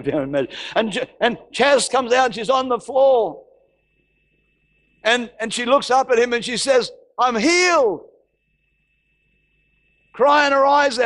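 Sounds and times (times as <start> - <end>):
man's voice: 0.0 - 3.4, 5.0 - 8.1, 10.2 - 11.0.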